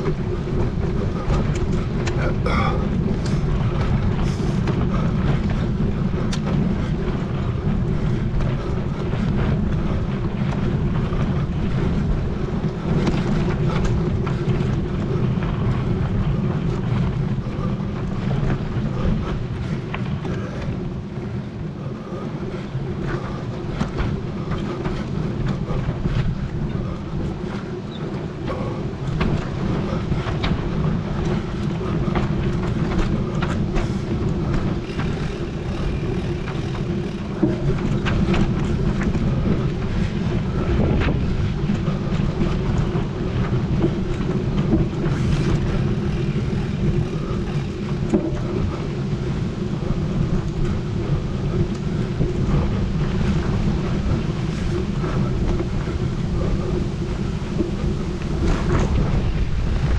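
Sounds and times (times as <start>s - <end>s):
bike rattling and knocking: 0.0s - 59.9s
bike tyres rumbling on dirt: 0.0s - 59.9s
wind on microphone: 0.0s - 59.9s.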